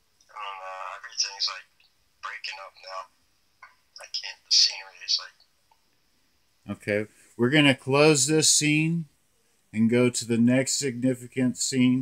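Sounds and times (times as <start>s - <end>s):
person speaking over telephone: 0.3s - 3.1s, 4.0s - 5.5s.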